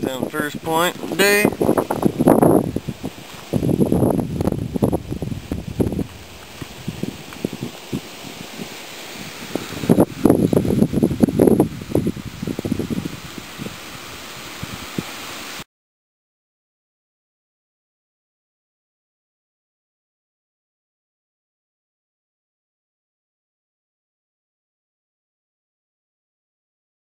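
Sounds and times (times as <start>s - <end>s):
wind buffeting microphone: 0.0s - 15.6s.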